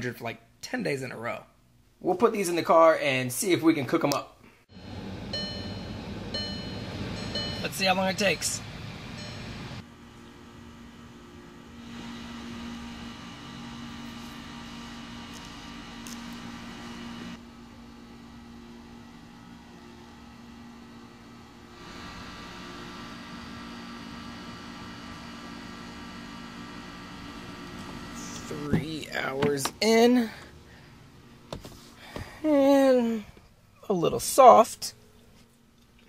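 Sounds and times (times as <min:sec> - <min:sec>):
faint high steady tones: 0:04.7 - 0:09.8
steady low hum: 0:04.7 - 0:36.0.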